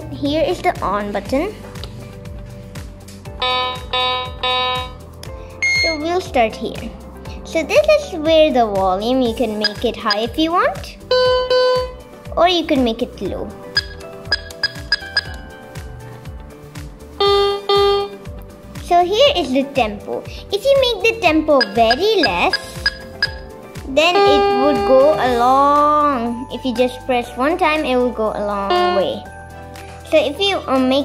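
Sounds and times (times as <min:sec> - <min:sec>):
electronic keyboard held notes: 0:03.4 - 0:05.0, 0:05.6 - 0:06.0, 0:13.8 - 0:15.5, 0:17.2 - 0:18.2, 0:21.6 - 0:23.5
electronic keyboard note: 0:03.4 - 0:05.0, 0:05.6 - 0:06.0, 0:17.2 - 0:18.2, 0:24.1 - 0:25.5, 0:28.7 - 0:29.2
keyboard button beep: 0:05.6 - 0:06.0, 0:09.6 - 0:10.2, 0:13.8 - 0:15.4, 0:21.6 - 0:23.4
low repeating beat: 0:13.7 - 0:16.0, 0:21.6 - 0:23.6
electronic drum thuds: 0:13.8 - 0:15.4, 0:21.6 - 0:23.5.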